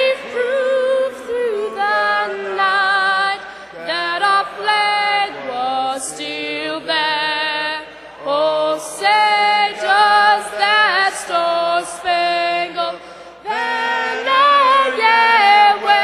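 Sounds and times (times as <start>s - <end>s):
girl singing into microphone: 0.0s - 13.6s
crowd singing along: 0.0s - 16.0s.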